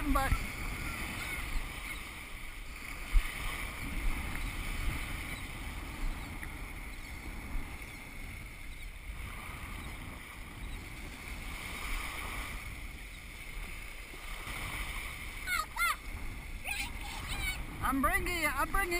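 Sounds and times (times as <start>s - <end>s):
shallow water washing: 0.0s - 18.9s
wind buffeting microphone: 0.0s - 18.9s.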